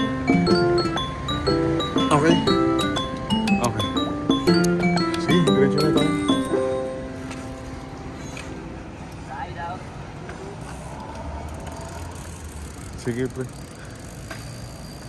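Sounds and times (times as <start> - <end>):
low traffic rumble: 0.0 - 15.0
chiming background music: 3.6 - 7.0.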